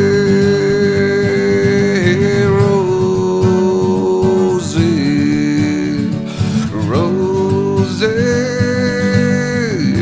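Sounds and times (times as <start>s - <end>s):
strummed acoustic guitar: 0.0s - 10.0s.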